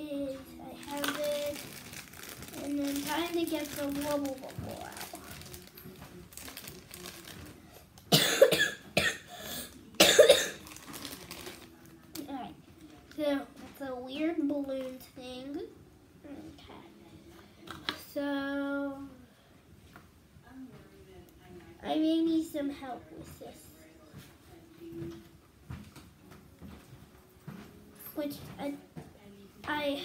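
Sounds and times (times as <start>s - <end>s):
child coughing: 8.1s - 10.6s.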